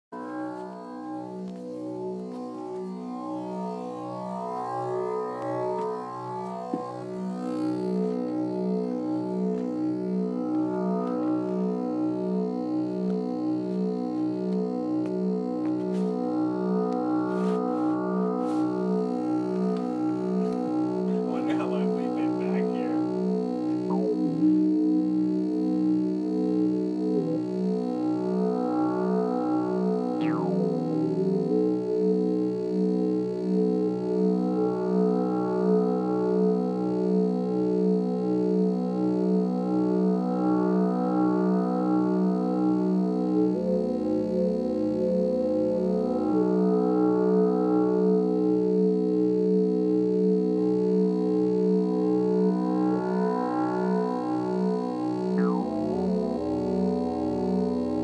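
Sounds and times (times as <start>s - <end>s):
pulsing synth drone: 0.1s - 58.0s
held synth tone: 0.2s - 34.6s, 55.2s - 57.6s
high synth blips and glides: 21.1s - 24.6s, 30.2s - 30.7s, 55.4s - 56.1s.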